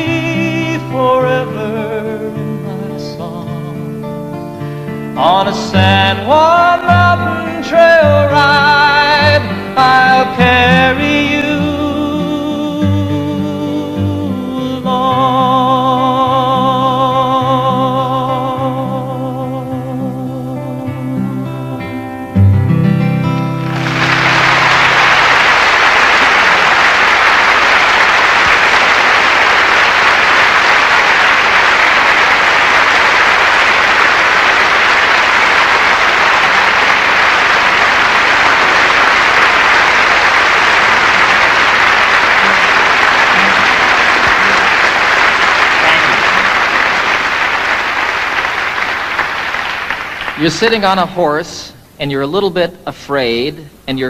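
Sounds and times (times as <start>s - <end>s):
live band final chord: 22.4s - 49.0s
audience applause: 23.6s - 50.9s.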